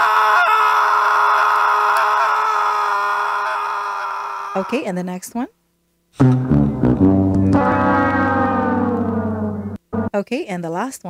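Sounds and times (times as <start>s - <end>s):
long held synthetic note: 6.2s - 10.2s.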